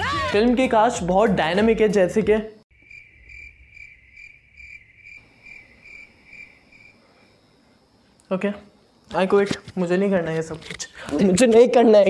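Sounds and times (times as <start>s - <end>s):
cricket chirping: 2.6s - 12.0s.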